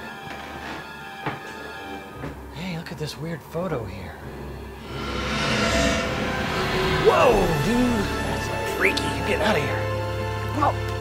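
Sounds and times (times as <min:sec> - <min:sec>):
steady eerie drone: 0:04.6 - 0:10.4
noisy whoosh: 0:04.8 - 0:08.6.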